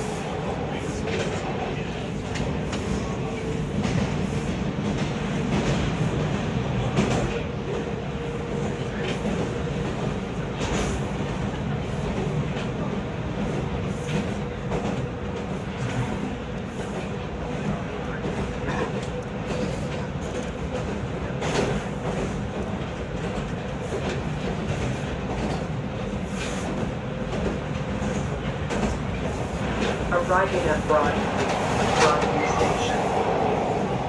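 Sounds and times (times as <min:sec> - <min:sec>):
train wheels rumbling on rails: 0:00.0 - 0:34.0
track clacks: 0:16.8 - 0:34.0.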